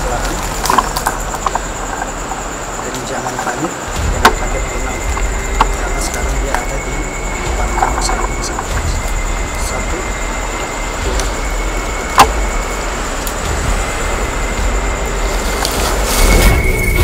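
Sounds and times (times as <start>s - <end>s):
faint high whine: 0.0s - 17.0s
loud rumbling: 0.0s - 17.0s.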